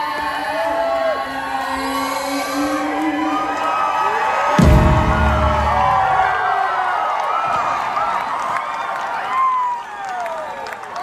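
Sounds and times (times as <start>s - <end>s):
crowd cheering and whooping: 0.2s - 11.0s
live band playing: 4.6s - 6.4s
final hit with deep bass: 4.6s - 6.5s.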